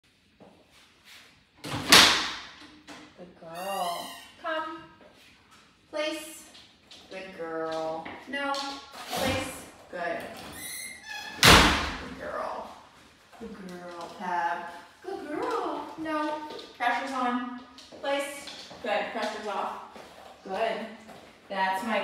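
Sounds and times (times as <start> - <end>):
woman speaking: 3.2 - 5.0, 5.9 - 10.4, 12.0 - 12.8, 13.4 - 22.0.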